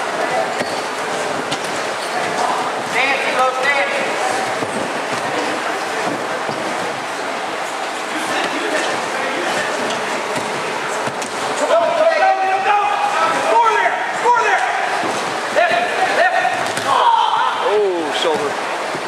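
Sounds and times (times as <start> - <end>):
hubbub of wrestlers drilling: 0.0 - 19.0.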